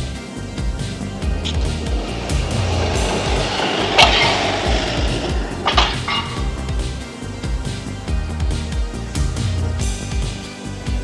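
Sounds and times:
music with steady beat: 0.0s - 11.0s
loud clattering hit: 0.8s - 7.0s.

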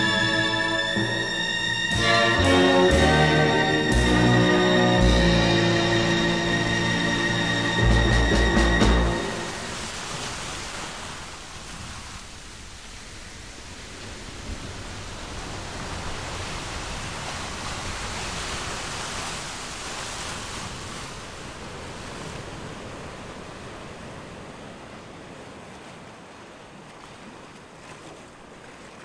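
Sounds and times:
waves breaking: 0.0s - 29.0s.

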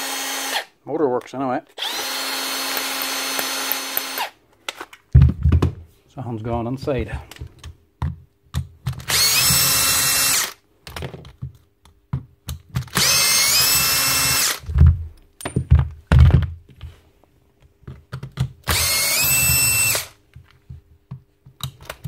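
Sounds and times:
cordless drill spinning up: 0.0s - 0.7s, 1.8s - 4.4s, 9.0s - 10.6s, 12.9s - 14.7s, 18.7s - 20.2s.

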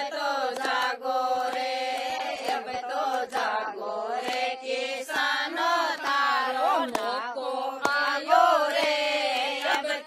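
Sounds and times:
hand claps: 0.0s - 10.0s
women singing folk song together: 0.0s - 10.0s.

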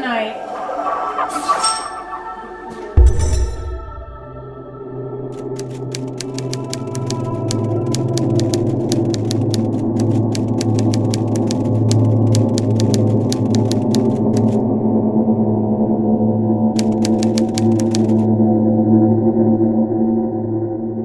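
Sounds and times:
low music drone: 2.2s - 21.0s
typewriter keystroke clicks: 5.4s - 14.6s, 16.8s - 18.2s.

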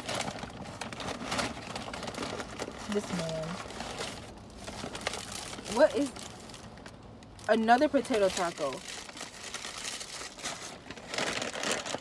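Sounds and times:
paper bag rustling: 0.0s - 12.0s.

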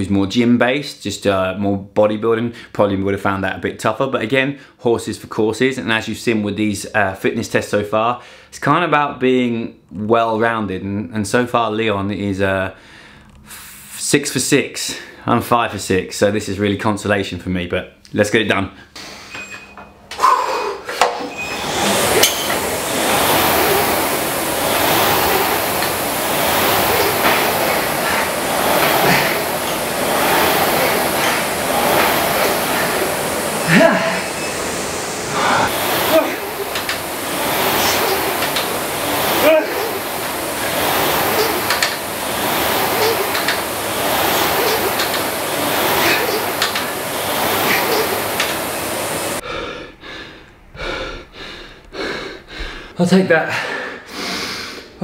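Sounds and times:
clicks and clinks of rowing machine: 19.3s - 20.2s, 20.9s - 33.4s, 36.0s - 49.0s
rowing machine flywheel whooshing: 20.2s - 49.4s.

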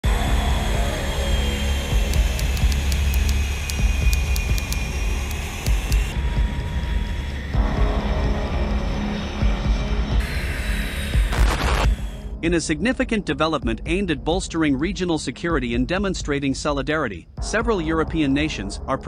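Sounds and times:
jet engines whining: 0.0s - 11.3s
background music: 0.0s - 19.0s.

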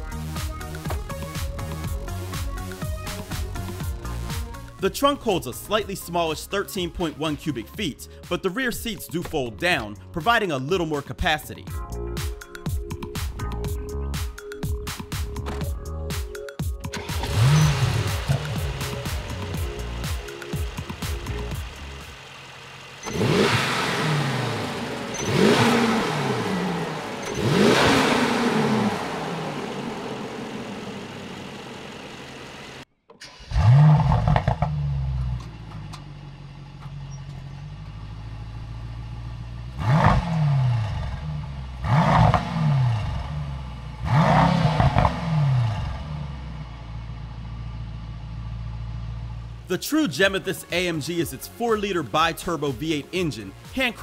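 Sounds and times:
car engine starting and revving: 14.4s - 54.0s.

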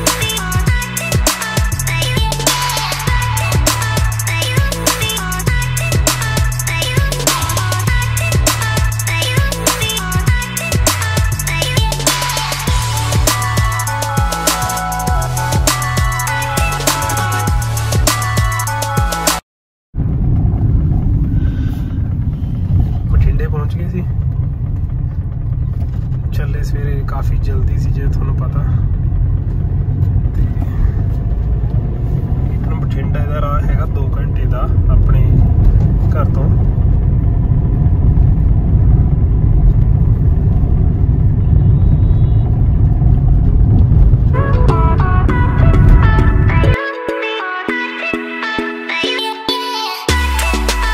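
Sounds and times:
car cabin road and engine rumble: 0.0s - 18.3s, 20.0s - 46.8s.

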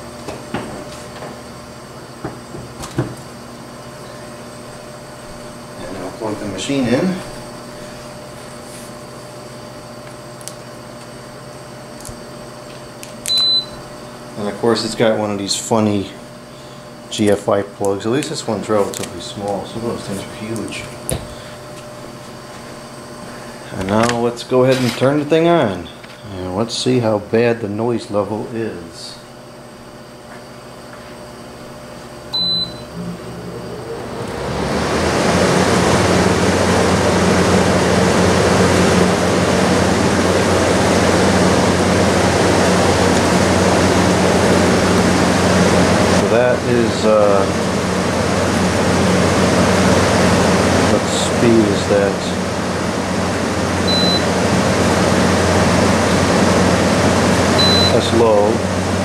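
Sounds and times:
air conditioner fan rushing: 0.0s - 59.0s
control panel beep: 13.3s - 13.8s, 32.3s - 33.1s, 53.9s - 54.3s, 57.6s - 58.0s.

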